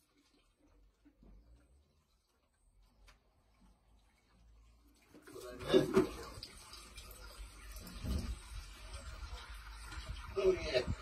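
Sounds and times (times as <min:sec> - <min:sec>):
hose water running into bucket: 0:00.0 - 0:11.0.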